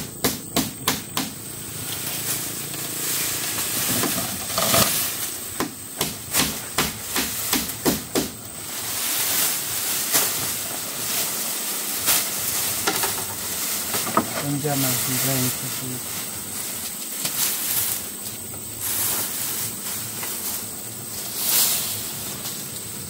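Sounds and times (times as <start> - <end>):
steady hiss: 0.0 - 23.0
knocks on wooden roof frame: 0.2 - 1.4, 5.6 - 8.4.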